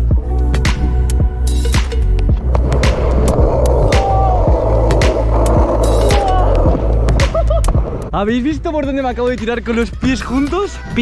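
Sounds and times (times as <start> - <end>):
music with bass beat: 0.0 - 8.2
skateboard wheels rolling: 2.0 - 8.1.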